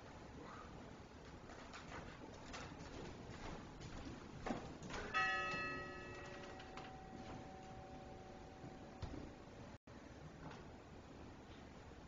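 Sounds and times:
small metal bell ringing: 5.1s - 8.7s.

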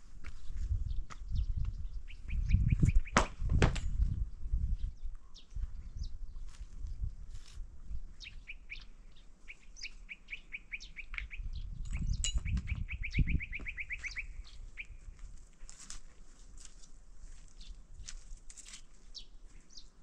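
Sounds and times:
footsteps on stony ground: 0.0s - 1.8s, 5.5s - 10.1s, 13.6s - 19.9s
songbird chirping: 0.5s - 3.4s, 4.1s - 7.2s, 7.9s - 15.9s, 16.6s - 20.0s.

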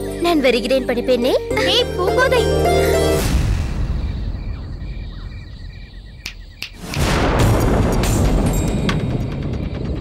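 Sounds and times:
crickets chirping: 3.6s - 6.9s.

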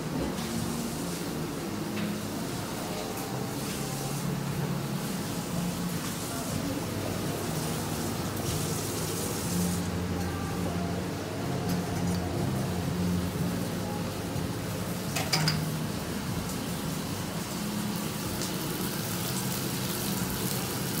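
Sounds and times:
kitchen noise: 11.5s - 13.1s, 14.9s - 16.8s
dishes clattering: 15.1s - 15.7s.

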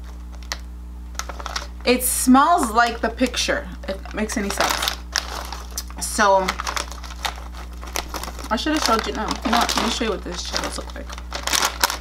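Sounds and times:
foil snack bag crinkling: 0.0s - 1.8s, 2.8s - 12.0s
steady low hum: 0.0s - 12.0s.

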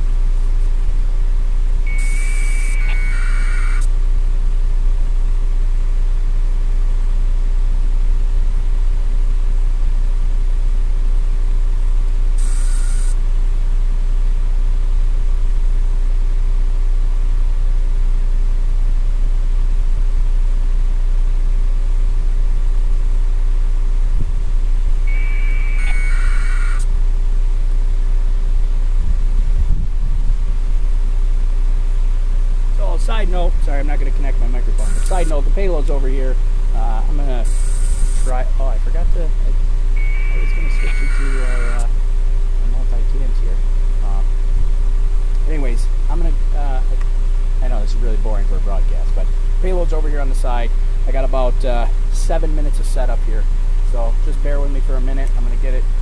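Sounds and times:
low engine rumble: 0.0s - 56.0s
hiss bursts with beeping tones: 1.8s - 3.9s, 12.4s - 13.2s, 25.0s - 26.9s, 34.4s - 35.9s, 36.8s - 38.8s, 39.9s - 41.9s.

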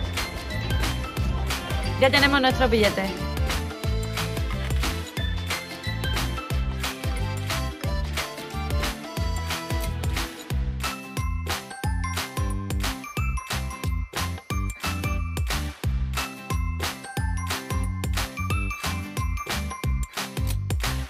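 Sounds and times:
music with steady beat and bass: 0.0s - 21.0s.

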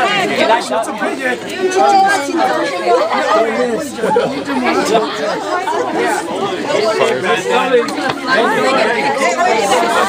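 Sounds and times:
people talking over one another: 0.0s - 10.0s
group of people laughing: 2.8s - 5.3s.

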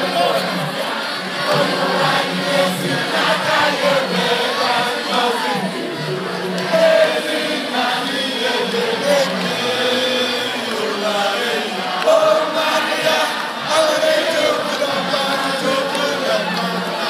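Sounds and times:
large crowd singing or chanting: 0.0s - 17.0s.

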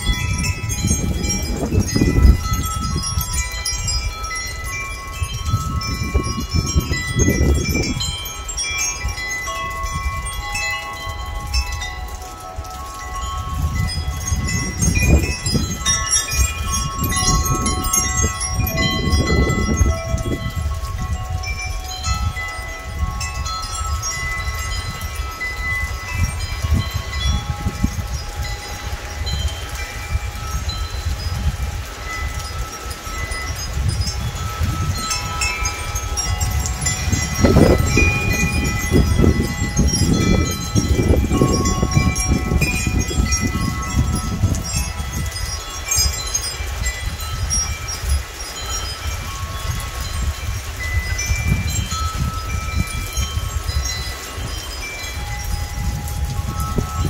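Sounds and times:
metal wind chimes ringing: 0.0s - 57.0s
wind buffeting microphone: 0.0s - 57.0s.

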